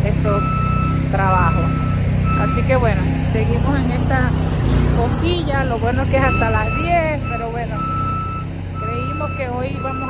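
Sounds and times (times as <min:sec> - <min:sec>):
engine running: 0:00.0 - 0:10.0
motion alarm beeping: 0:00.2 - 0:03.0, 0:05.9 - 0:10.0.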